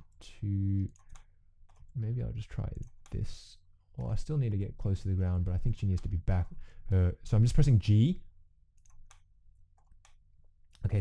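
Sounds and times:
person speaking: 0.0 - 8.4, 10.6 - 11.0.

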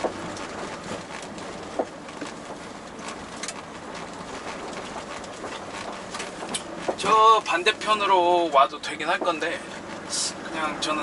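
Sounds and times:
truck engine and road noise: 0.0 - 11.0.

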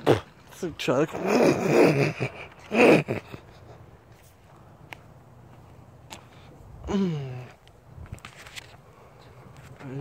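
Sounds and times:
man's breathy vocal burst: 6.8 - 7.6.

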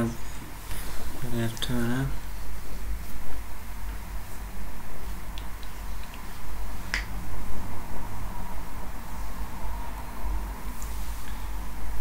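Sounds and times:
low electrical hum: 0.0 - 12.0.

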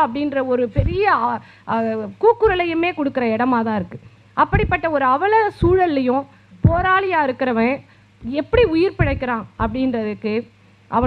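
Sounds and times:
woman speaking into a microphone: 0.0 - 11.0.

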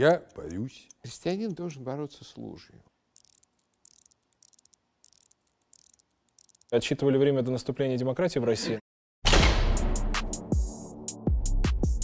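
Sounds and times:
watch winding ratcheting clicks: 0.0 - 1.6, 3.1 - 6.8.

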